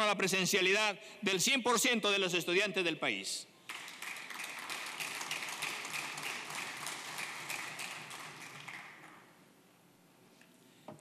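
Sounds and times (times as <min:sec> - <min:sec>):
many hands clapping: 0:03.6 - 0:09.4.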